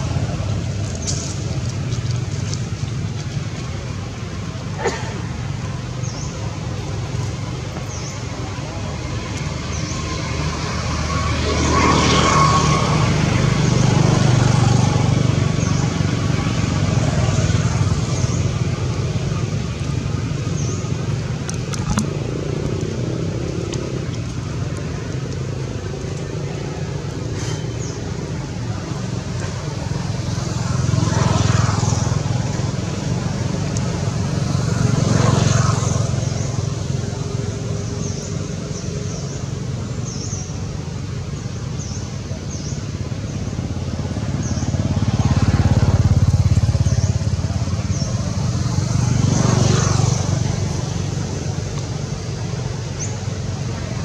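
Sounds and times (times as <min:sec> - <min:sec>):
low outdoor rumble: 0:00.0 - 0:54.0.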